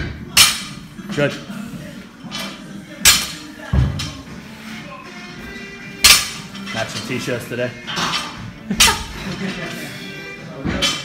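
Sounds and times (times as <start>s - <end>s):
background music: 0.0s - 11.0s
barbell clanking: 2.3s - 3.5s, 6.0s - 7.1s.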